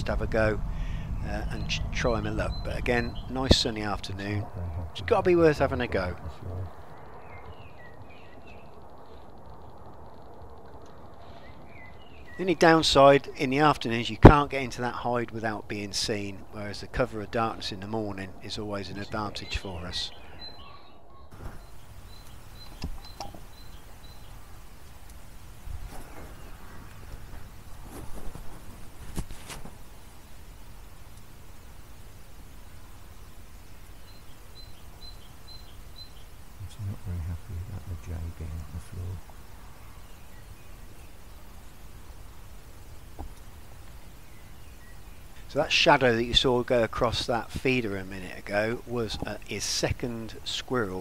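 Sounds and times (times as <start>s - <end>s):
low rumble: 0.0s - 12.0s
low background rumble: 0.0s - 29.0s, 29.7s - 46.8s.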